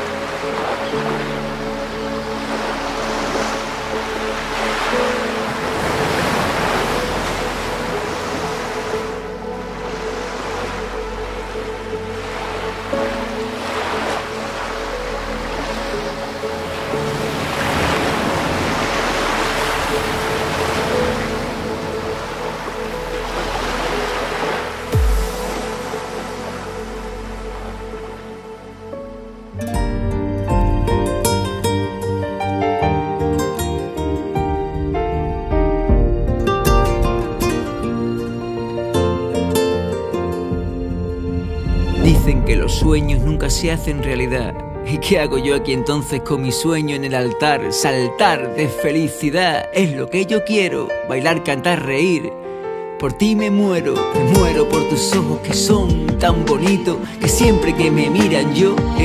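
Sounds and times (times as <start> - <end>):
sea waves breaking: 0.0 - 29.6, 30.2 - 49.9, 50.8 - 59.0
soft music with held notes: 0.0 - 59.0
low boom: 41.9 - 45.8.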